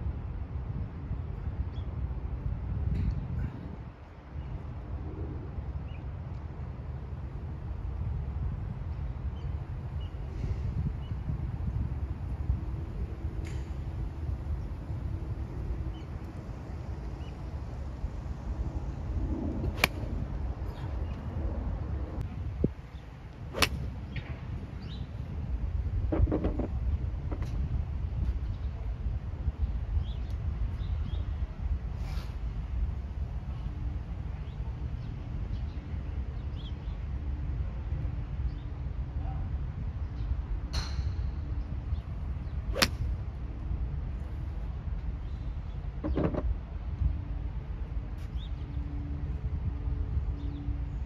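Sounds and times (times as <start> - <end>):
low background rumble: 0.0 - 51.0
golf club striking ball: 19.8 - 20.0, 23.5 - 23.9, 42.7 - 43.1.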